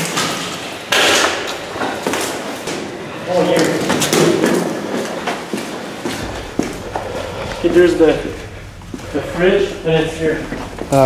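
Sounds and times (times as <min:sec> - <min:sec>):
indistinct voices talking: 0:02.7 - 0:11.0.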